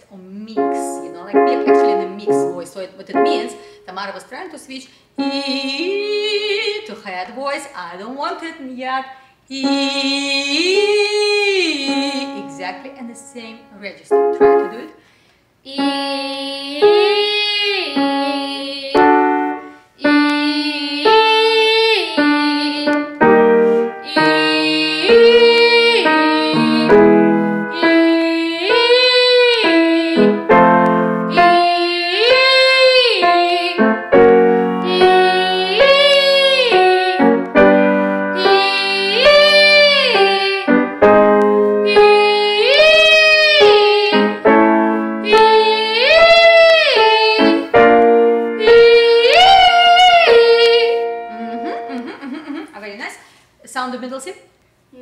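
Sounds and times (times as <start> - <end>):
girl singing vocal exercise: 0.0 - 4.1, 4.8 - 7.0, 9.3 - 15.0, 15.6 - 30.6, 31.2 - 41.0, 41.8 - 44.6, 45.2 - 47.9, 48.5 - 52.0
piano chords: 0.4 - 4.2, 9.6 - 15.0, 15.7 - 52.6.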